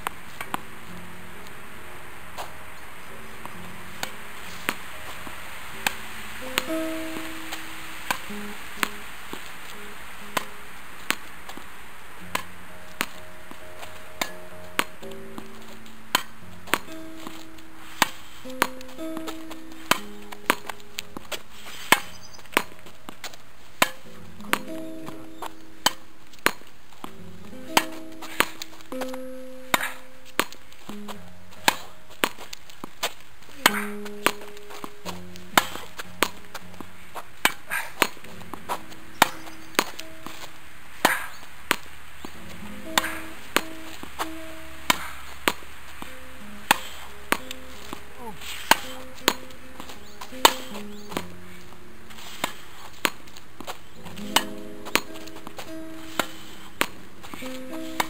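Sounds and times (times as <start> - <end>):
tennis ball struck with racket: 0.0 - 1.6, 2.3 - 2.6, 3.4 - 58.0
melodic background music: 0.0 - 58.0
ball rebounding off wall: 12.2 - 23.2, 23.8 - 32.4, 52.4 - 58.0.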